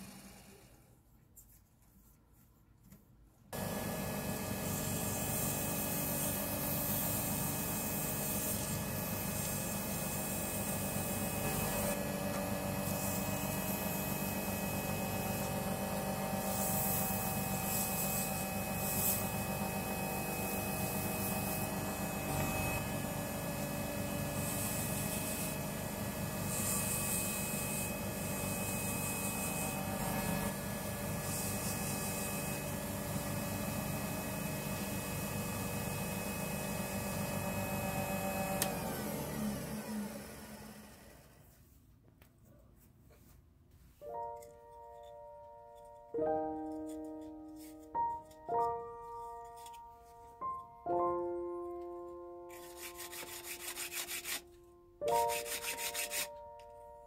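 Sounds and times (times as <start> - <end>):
wood lathe humming: 3.6 - 41.3, 52.5 - 54.4, 55.2 - 56.4
sandpaper hissing on wood: 52.5 - 54.4, 55.1 - 56.4.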